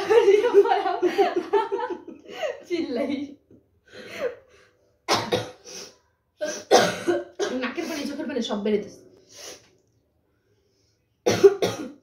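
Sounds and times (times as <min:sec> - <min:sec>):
woman coughing harshly: 0:05.1 - 0:05.7, 0:06.4 - 0:08.2, 0:11.2 - 0:12.0.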